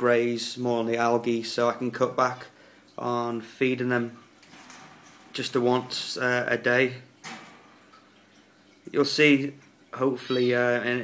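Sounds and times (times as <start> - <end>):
man talking: 0.0 - 4.2, 5.3 - 7.1, 8.9 - 11.0
aquarium water trickling: 0.0 - 11.0.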